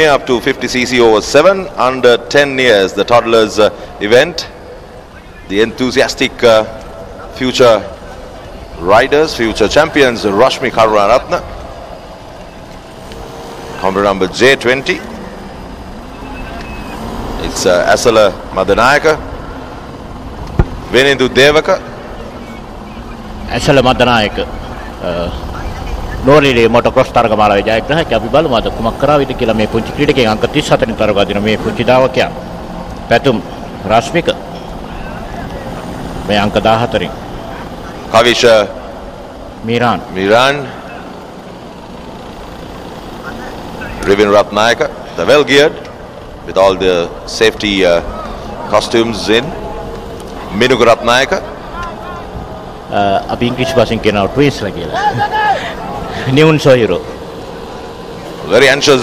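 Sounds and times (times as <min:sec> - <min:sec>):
outdoor background noise: 0:00.0 - 0:59.0
small motorcycles idling: 0:00.0 - 0:59.0.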